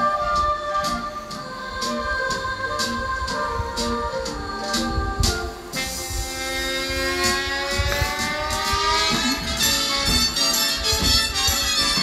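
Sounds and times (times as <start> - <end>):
music with rising sustained chord: 0.0 - 12.0.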